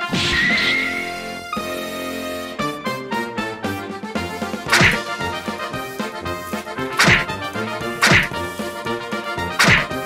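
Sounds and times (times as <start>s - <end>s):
background music: 0.0s - 10.0s
cartoon whack sound effects: 4.7s - 5.1s, 7.0s - 7.3s, 8.0s - 8.4s, 9.6s - 10.0s.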